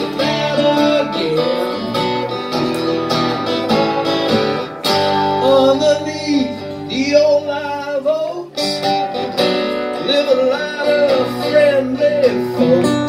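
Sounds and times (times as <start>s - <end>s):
acoustic guitars playing folk: 0.0s - 13.0s.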